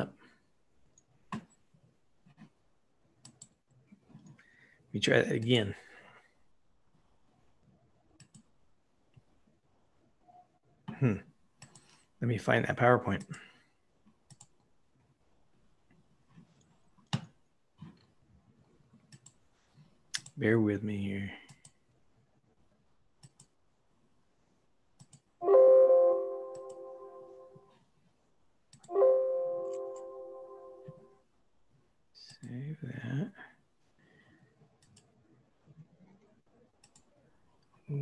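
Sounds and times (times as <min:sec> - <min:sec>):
bright chord of steady tones: 0:25.4 - 0:27.6, 0:28.9 - 0:31.1.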